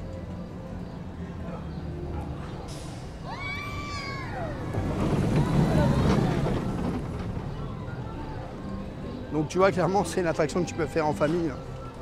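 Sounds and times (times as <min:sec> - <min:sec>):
roller coaster rumbling past: 0:02.1 - 0:09.1.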